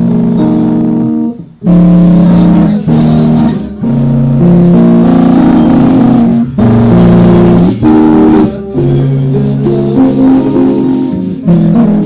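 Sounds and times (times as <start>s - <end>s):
live band playing slow ballad: 0.0s - 12.0s.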